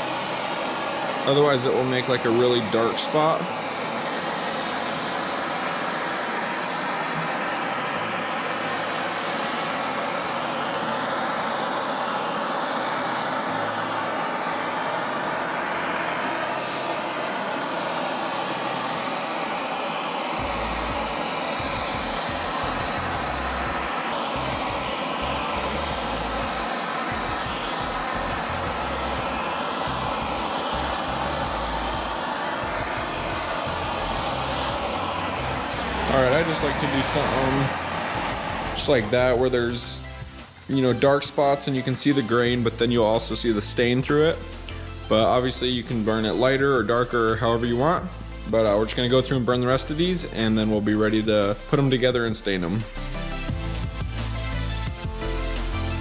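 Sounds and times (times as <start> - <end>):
torch flame roaring: 0.0 - 50.8
low rumble: 20.4 - 40.4.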